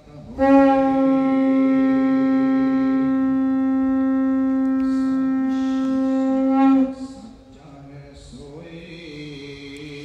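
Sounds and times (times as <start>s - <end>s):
conch shell blowing: 0.2s - 7.5s.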